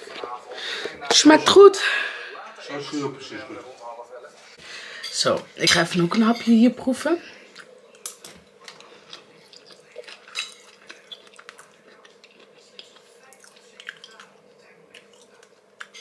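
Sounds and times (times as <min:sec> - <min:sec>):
person chewing: 0:07.5 - 0:16.0.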